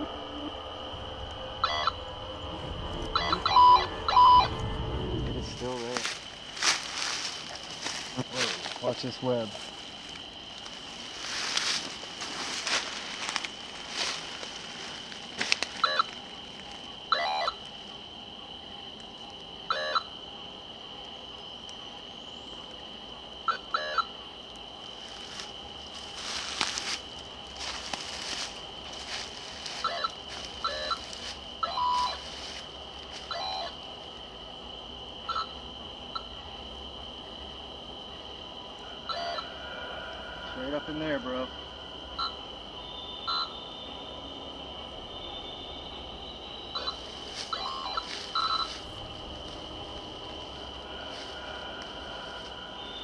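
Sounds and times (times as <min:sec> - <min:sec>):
high-pitched insect chorus: 0:00.0 - 0:53.0
rustling through brush: 0:05.6 - 0:16.9, 0:24.9 - 0:33.6, 0:46.7 - 0:53.0.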